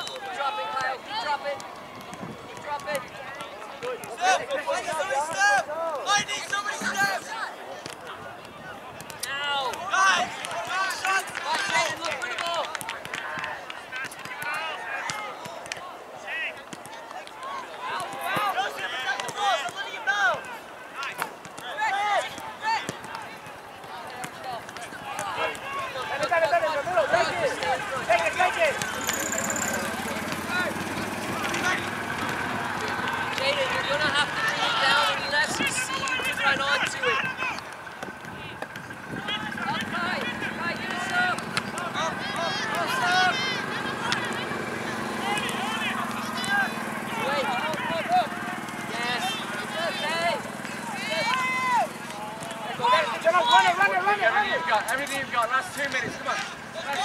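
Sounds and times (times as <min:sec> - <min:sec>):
people shouting on a field: 0:00.0 - 0:57.0.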